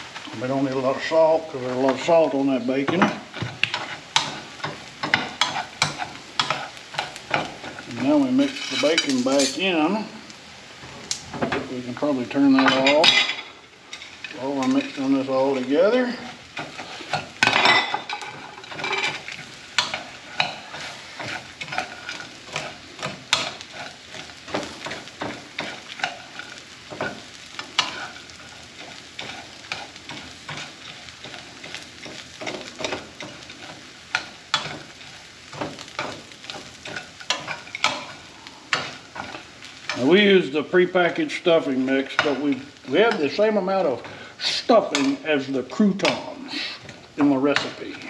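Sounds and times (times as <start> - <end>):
spatula scraping a skillet: 0.1 - 48.0.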